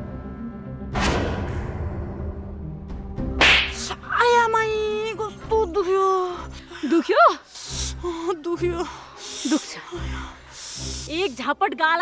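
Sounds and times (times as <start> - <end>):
hard slap on cheek: 3.4 - 4.0.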